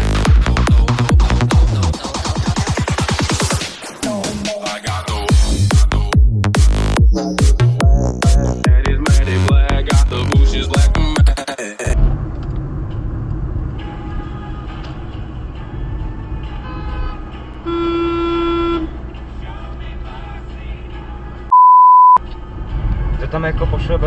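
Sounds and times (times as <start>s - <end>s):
car interior road and engine noise: 12.0s - 24.0s
car horn honk: 16.6s - 19.0s
loud steady beep: 21.5s - 22.2s.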